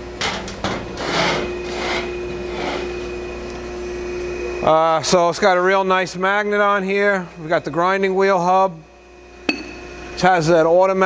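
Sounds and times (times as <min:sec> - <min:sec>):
steady hum: 0:00.0 - 0:11.0
panel scraping on surface: 0:00.2 - 0:03.0.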